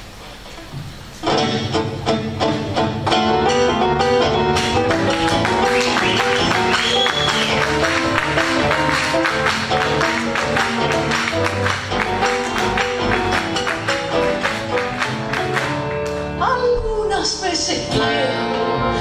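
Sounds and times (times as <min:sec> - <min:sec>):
live latin band playing: 0:01.2 - 0:16.4.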